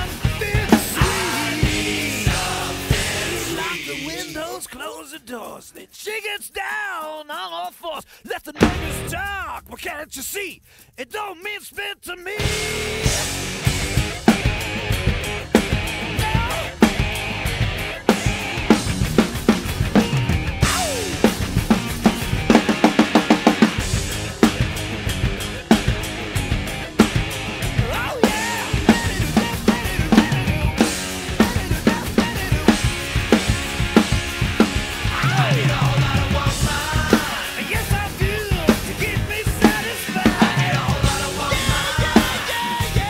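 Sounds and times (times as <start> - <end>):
hard rock backing track: 0.0 - 4.4, 8.6 - 10.0, 12.4 - 43.0
drum kit rock beat: 0.0 - 4.6, 8.3 - 11.6, 12.3 - 43.0.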